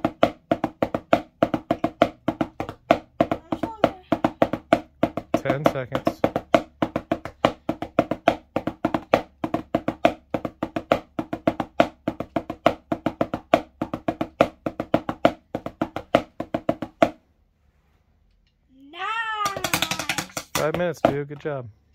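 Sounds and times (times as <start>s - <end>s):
drumsticks on practice pad: 0.0s - 17.2s, 19.4s - 21.5s.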